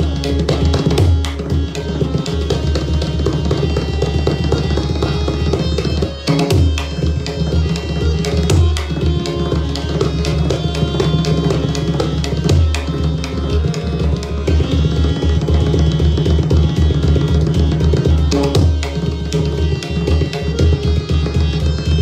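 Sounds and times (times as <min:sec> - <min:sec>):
harmonium melody: 0:00.0 - 0:22.0.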